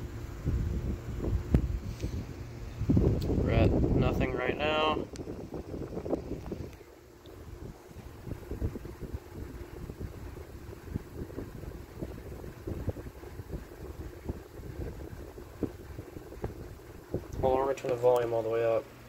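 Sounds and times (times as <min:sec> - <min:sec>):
camera handling rumble: 0:05.1 - 0:07.4.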